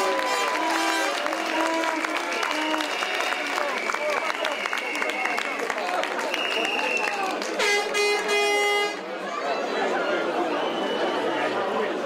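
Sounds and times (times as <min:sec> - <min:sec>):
crowd chatter: 0:00.0 - 0:12.0
horn held note: 0:07.6 - 0:09.0.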